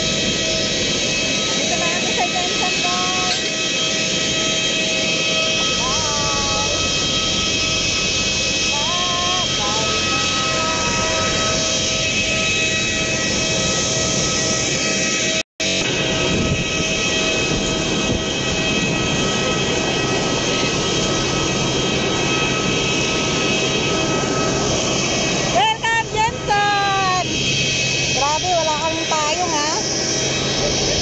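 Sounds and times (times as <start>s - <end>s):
high whining tones: 0.0s - 31.0s
jet turbines running: 0.0s - 31.0s.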